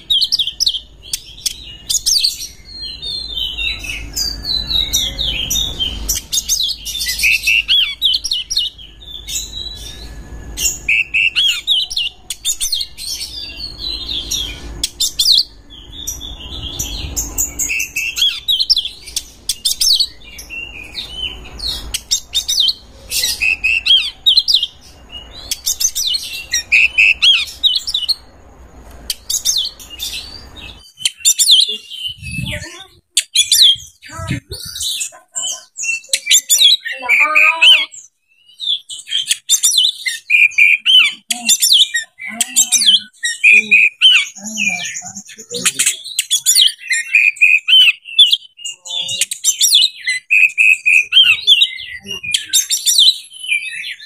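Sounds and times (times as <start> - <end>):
bird singing whistled song: 0.0 - 28.2, 35.8 - 54.0.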